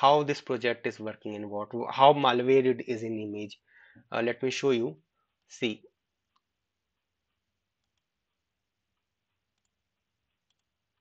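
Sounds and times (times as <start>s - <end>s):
faint computer mouse clicks: 9.3s - 11.0s.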